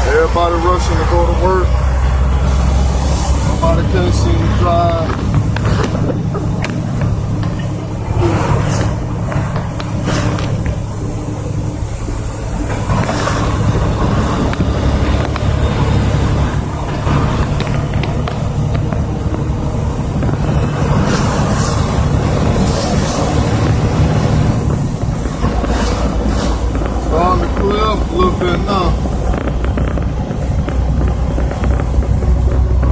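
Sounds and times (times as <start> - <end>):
road noise on wet highway: 0.0 - 32.9
truck engine rumble: 0.0 - 32.9.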